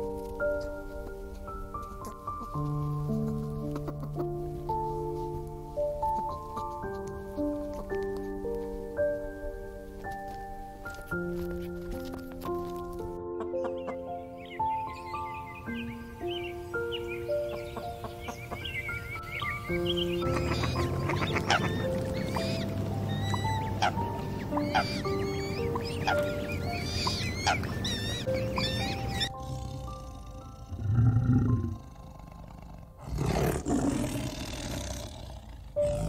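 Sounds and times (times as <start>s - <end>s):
background music: 0.0s - 36.0s
birds chirping: 12.3s - 36.0s
tiger growling: 29.2s - 36.0s.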